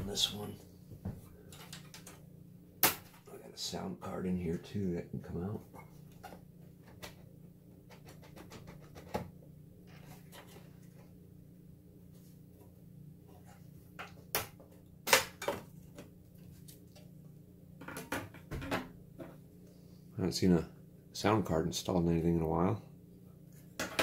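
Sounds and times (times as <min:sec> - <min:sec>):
faint low hum: 0:00.0 - 0:24.0.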